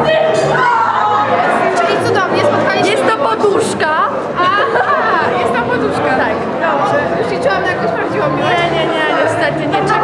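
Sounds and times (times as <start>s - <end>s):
women chattering: 1.2s - 10.0s.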